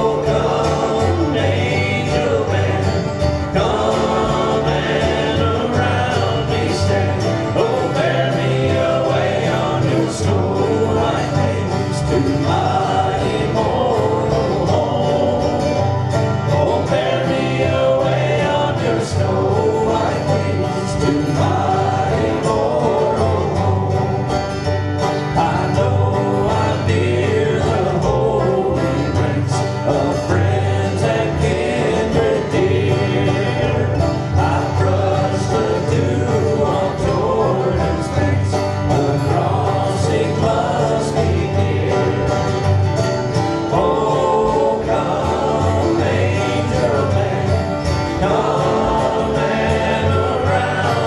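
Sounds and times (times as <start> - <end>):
acoustic guitars strumming: 0.0 - 51.0
banjo picking: 0.0 - 51.0
voices singing: 0.0 - 51.0.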